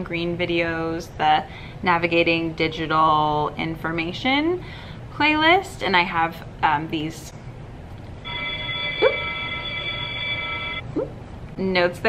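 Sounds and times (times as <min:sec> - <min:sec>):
electronic bell chime tone: 0:08.2 - 0:10.8.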